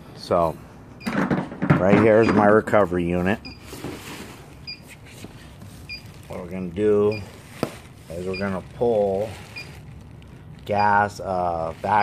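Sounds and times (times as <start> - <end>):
handling noise: 3.5 - 10.2.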